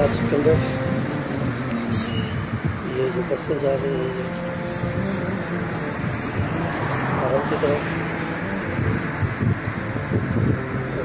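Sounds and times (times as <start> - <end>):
wind buffeting microphone: 0.0 - 3.4, 4.6 - 11.0
road traffic rumble: 0.0 - 11.0.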